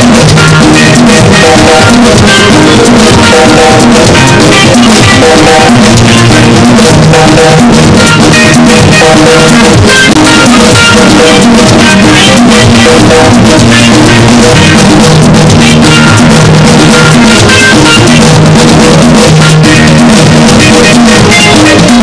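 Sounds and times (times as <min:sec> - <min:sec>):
drum kit beat: 0:00.0 - 0:22.0
live band music: 0:00.0 - 0:22.0.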